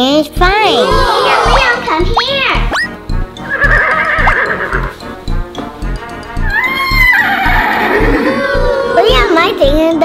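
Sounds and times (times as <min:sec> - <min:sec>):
children's music with beat: 0:00.0 - 0:10.0
horse whinny: 0:03.5 - 0:04.9, 0:06.5 - 0:08.4.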